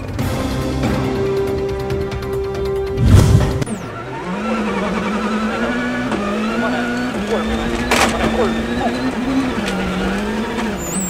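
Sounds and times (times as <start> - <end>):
car engine at high revs: 2.2 - 11.0
whoosh transition effect: 3.0 - 3.8.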